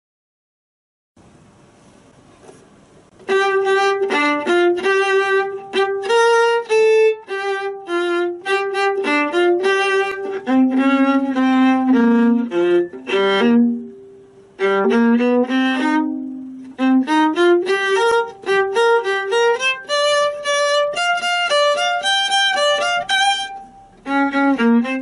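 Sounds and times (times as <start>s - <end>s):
solo viola bowing short notes: 3.2s - 25.0s.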